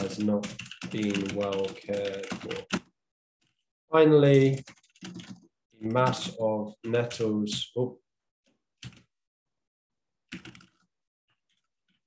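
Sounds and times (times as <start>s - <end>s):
typing on computer keyboard: 0.0s - 2.9s, 4.5s - 6.4s, 8.8s - 9.1s, 10.3s - 10.8s.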